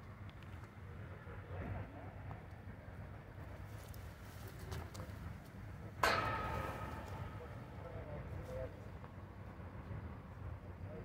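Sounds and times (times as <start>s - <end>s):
city traffic rumble: 0.0s - 11.0s
sudden loud ringing sound: 6.0s - 8.8s.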